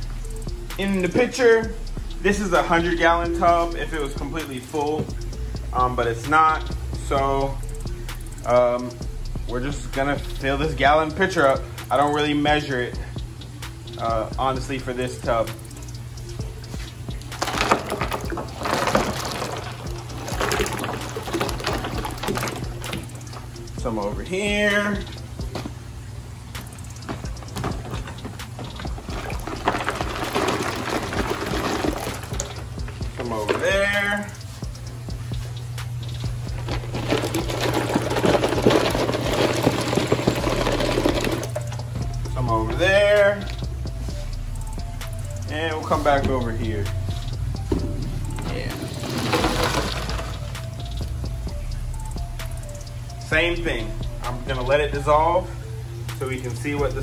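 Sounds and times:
background music: 0:00.0 - 0:57.0
water pouring and splashing: 0:16.7 - 0:24.0, 0:26.5 - 0:34.5, 0:35.7 - 0:41.9, 0:48.3 - 0:50.7.

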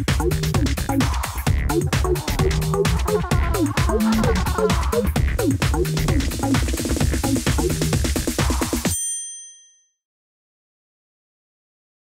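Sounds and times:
metallic chime ding: 0:08.9 - 0:10.0.

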